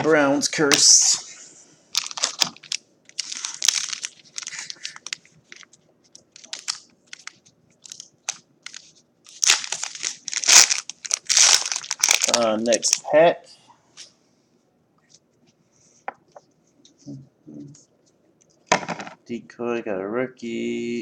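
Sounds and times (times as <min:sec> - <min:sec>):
foil wrapper crinkling: 0:01.9 - 0:13.1.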